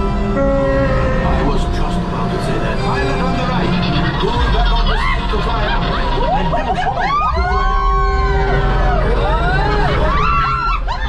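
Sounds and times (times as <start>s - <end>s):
steady low rumble: 0.0s - 10.2s.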